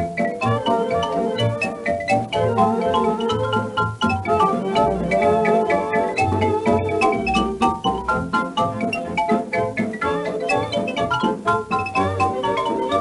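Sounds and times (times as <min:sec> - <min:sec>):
dance band playing quick notes: 0:00.0 - 0:13.0.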